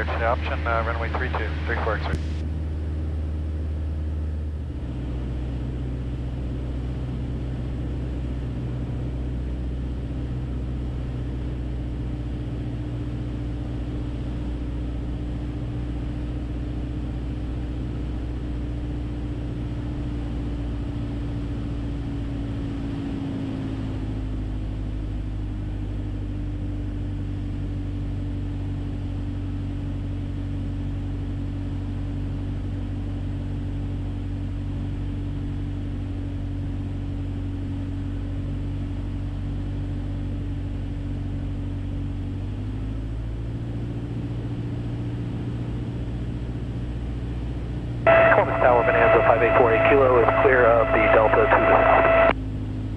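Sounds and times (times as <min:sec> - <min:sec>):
light aircraft engine and propeller drone: 0:00.0 - 0:52.9.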